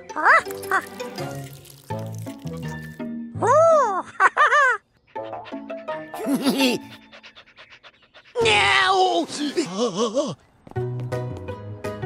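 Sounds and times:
cartoon dog panting: 0:05.0 - 0:08.9.

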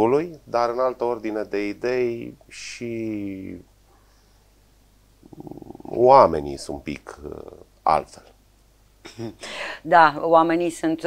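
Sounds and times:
person speaking: 0:00.0 - 0:03.6, 0:05.2 - 0:08.3
creaky vocal hesitation: 0:05.2 - 0:07.7.

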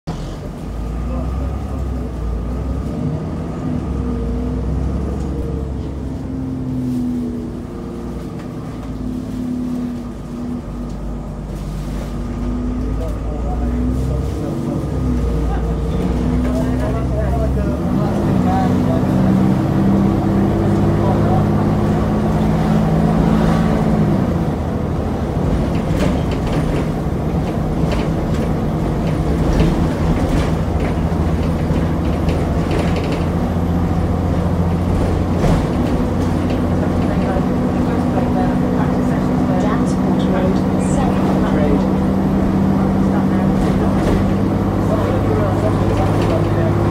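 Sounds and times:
bus diesel engine: 0:00.0 - 0:46.9
interior rattles: 0:25.2 - 0:46.9.

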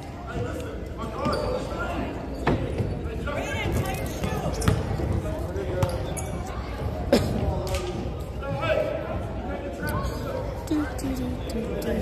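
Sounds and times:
voices echoing in gym: 0:00.0 - 0:12.0.

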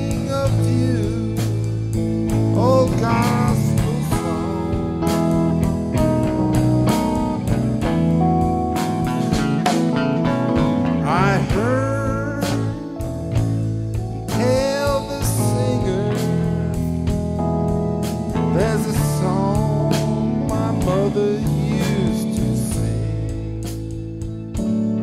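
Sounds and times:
drum kit cymbals: 0:00.0 - 0:25.0
electric lead guitar bent notes: 0:00.0 - 0:25.0
sustained keyboard and guitar chords: 0:00.0 - 0:25.0.

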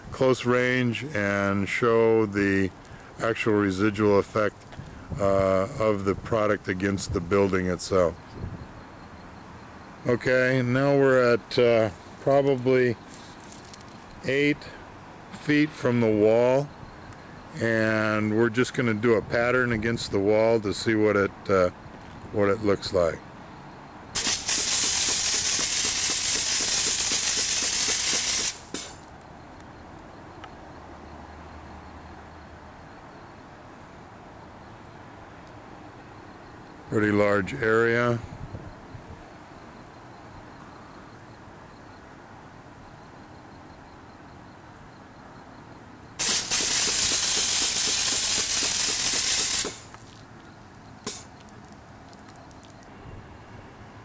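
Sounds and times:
loud hiss of air and foam: 0:24.2 - 0:29.0, 0:46.2 - 0:49.9, 0:51.1 - 0:51.3
short air puff: 0:24.2 - 0:29.0, 0:51.0 - 0:51.3.

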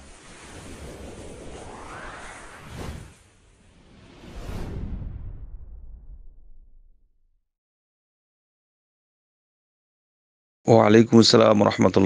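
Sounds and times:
rushing whoosh rising in pitch: 0:00.0 - 0:05.9.

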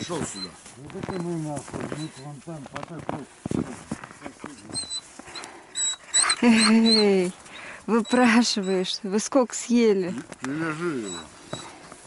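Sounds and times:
dog whining: 0:04.5 - 0:09.0, 0:10.6 - 0:11.8.

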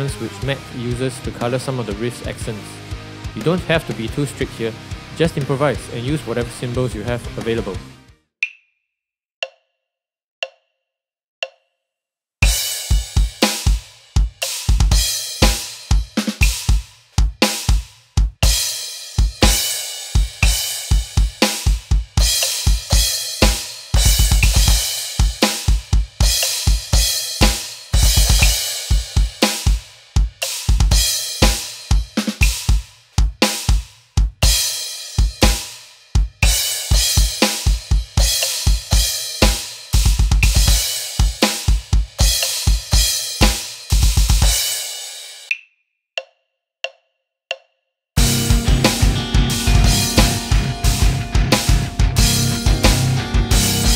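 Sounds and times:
rapid bass drum strokes: 0:00.0 - 0:08.0, 0:12.4 - 0:44.8, 0:48.2 - 0:53.9
electronic drum kit groove: 0:00.0 - 0:08.1, 0:12.4 - 0:45.6, 0:48.2 - 0:53.9
cymbal crashes: 0:48.2 - 0:53.9.

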